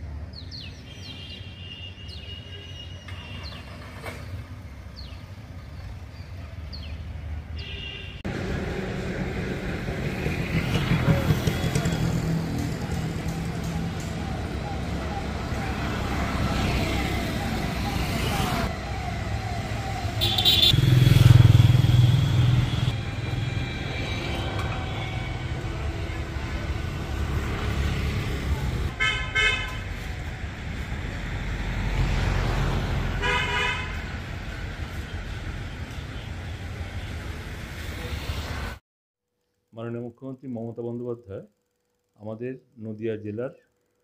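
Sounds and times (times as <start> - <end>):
vehicles passing: 3.1 - 38.8
car horns tooting: 7.6 - 8.3, 11.1 - 12.3, 20.2 - 21.0, 28.9 - 30.0, 33.2 - 34.0.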